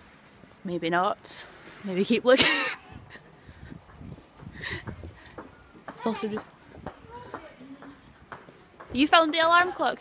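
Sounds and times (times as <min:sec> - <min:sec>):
woman talking: 0:00.7 - 0:02.8, 0:06.0 - 0:07.8, 0:08.9 - 0:10.0.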